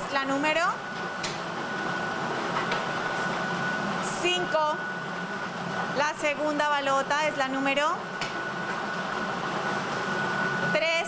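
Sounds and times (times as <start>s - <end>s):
lottery machine whirring: 0.0s - 11.0s.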